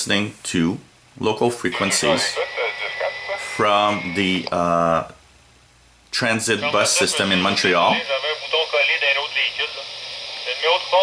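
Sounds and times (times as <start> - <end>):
voice talking over radio scanner: 1.7 - 4.6, 6.6 - 11.0.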